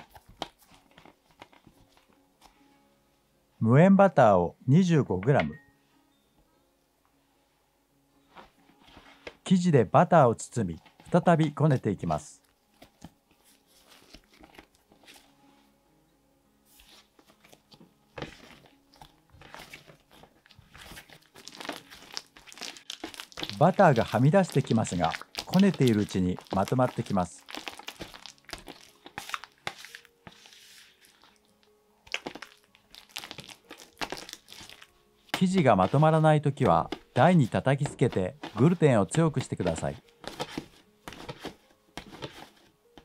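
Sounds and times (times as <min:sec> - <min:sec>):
faint background music: 0:00.0 - 0:43.0
hands kneading sticky dough: 0:16.8 - 0:31.5, 0:32.1 - 0:42.6.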